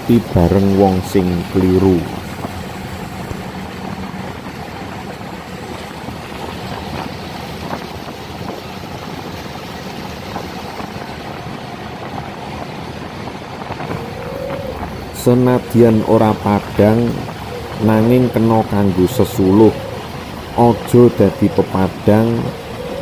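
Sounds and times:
boat engine humming: 0.0s - 23.0s
water rushing along hull: 0.0s - 23.0s.

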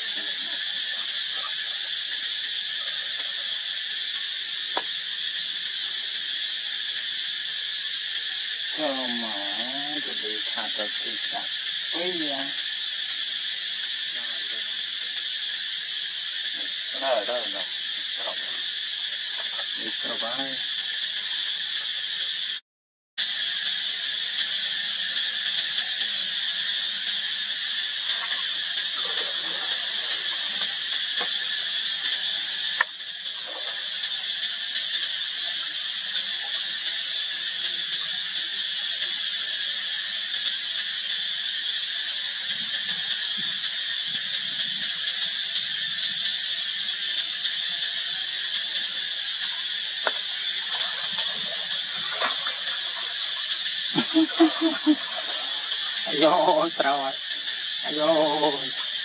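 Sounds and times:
insect chorus drone: 0.0s - 22.6s, 23.2s - 59.0s.

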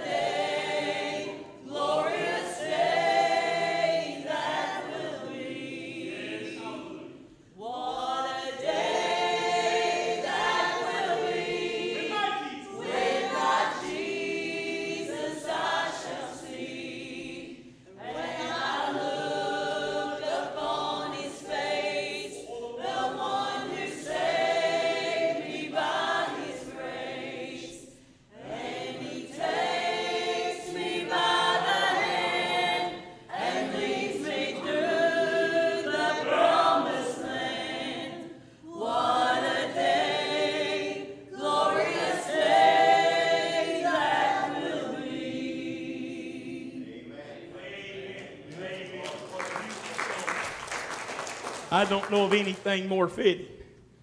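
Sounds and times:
group singing: 0.0s - 49.7s.

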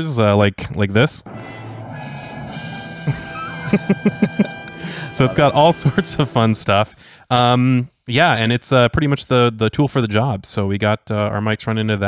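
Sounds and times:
musical sound effect: 1.3s - 7.5s
man laughing: 3.1s - 4.6s.

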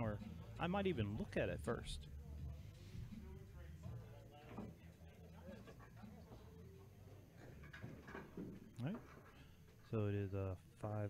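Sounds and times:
quiet background talk: 0.0s - 11.0s.

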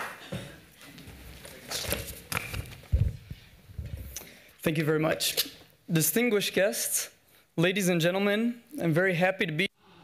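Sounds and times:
microphone handling thumps: 2.4s - 4.2s.

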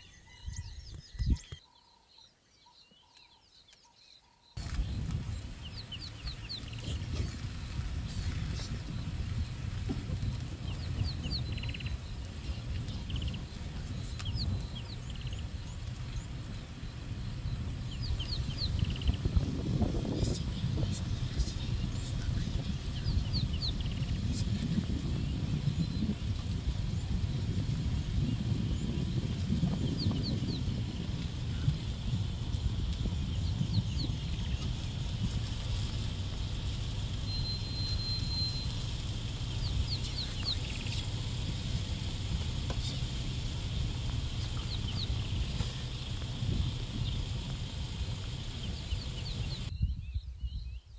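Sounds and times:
wild birds chirping: 0.0s - 50.9s
low rumble: 4.6s - 50.8s
small bird whistling: 37.2s - 38.9s.

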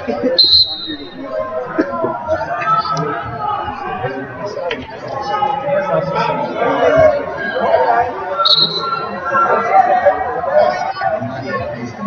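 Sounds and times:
people talking in a hall: 0.0s - 12.0s.

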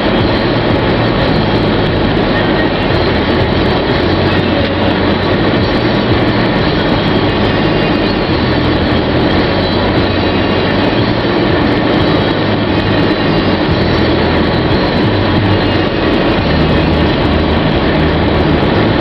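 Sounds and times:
low engine hum: 0.0s - 19.0s.

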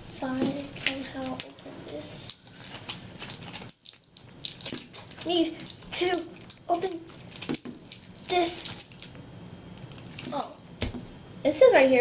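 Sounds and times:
plastic wrapping rustling: 0.0s - 9.2s, 9.9s - 11.2s
sharp plastic crackle: 0.2s - 9.2s, 9.8s - 11.0s.

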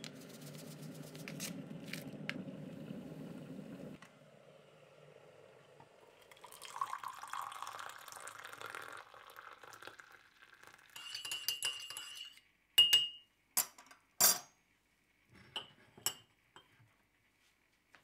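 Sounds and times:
water poured into a mug: 5.9s - 12.0s
teaspoon stirring in a mug: 10.8s - 13.2s
spoon tapping mug rim: 11.0s - 13.7s.

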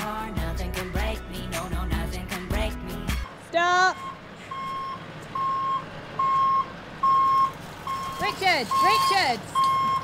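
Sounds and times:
reversing alarm beeping: 3.9s - 10.0s.

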